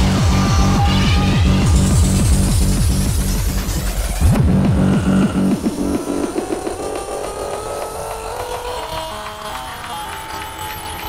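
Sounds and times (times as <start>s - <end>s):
electronic music with pulsing synth: 0.0s - 8.8s.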